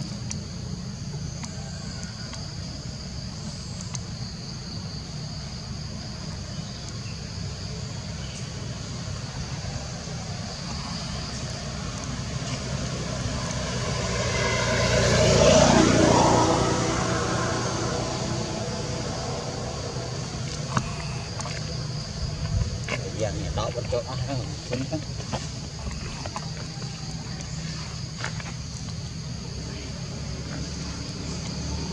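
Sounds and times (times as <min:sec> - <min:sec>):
insects droning: 0:00.0 - 0:31.9
motor vehicle passing by: 0:09.2 - 0:31.9.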